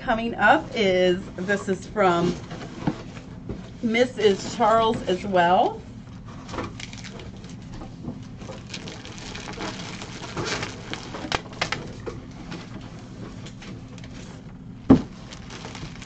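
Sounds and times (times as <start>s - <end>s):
steady low hum: 0.0s - 16.0s
plastic and cardboard rustling: 1.4s - 16.0s.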